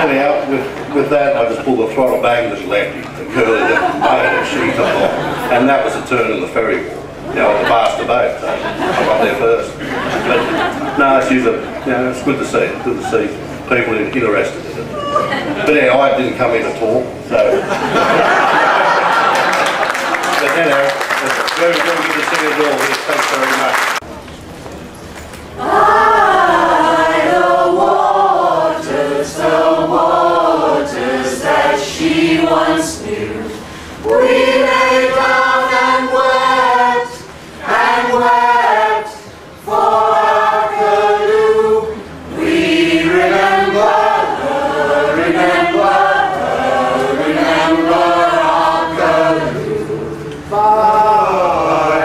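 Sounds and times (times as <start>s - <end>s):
mixed choir singing: 0.0s - 1.4s, 3.3s - 6.1s, 17.6s - 20.7s, 25.6s - 52.0s.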